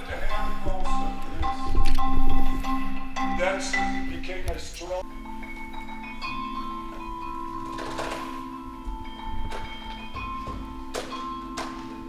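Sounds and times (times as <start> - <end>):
mallet percussion music: 0.0 - 12.0.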